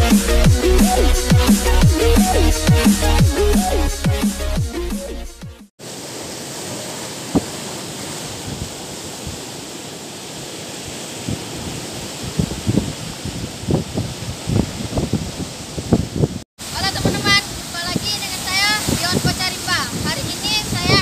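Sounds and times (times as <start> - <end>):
electronic music: 0.0 - 5.7
sea surf breaking on shore: 5.8 - 21.0
wind thumps on microphone: 7.2 - 9.5, 11.2 - 21.0.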